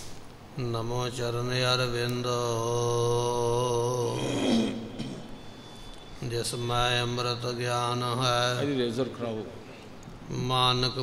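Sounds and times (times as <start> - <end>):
man chanting: 0.5 - 5.0, 6.2 - 9.6, 10.2 - 11.0.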